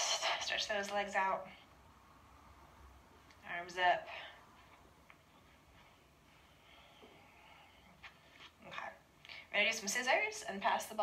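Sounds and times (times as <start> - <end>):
woman speaking: 0.0 - 1.6, 3.4 - 4.4, 8.6 - 11.0.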